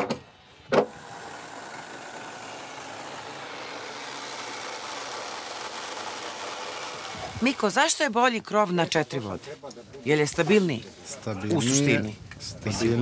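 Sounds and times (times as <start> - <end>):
corded power tool running: 0.6 - 8.1.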